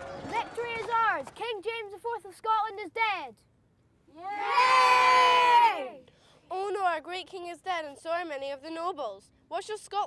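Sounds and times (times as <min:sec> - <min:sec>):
children cheering: 0:00.0 - 0:00.9, 0:04.2 - 0:05.9.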